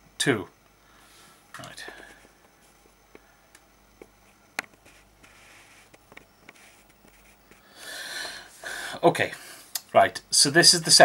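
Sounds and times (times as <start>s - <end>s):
soft rush of noise: 0.2s - 11.0s.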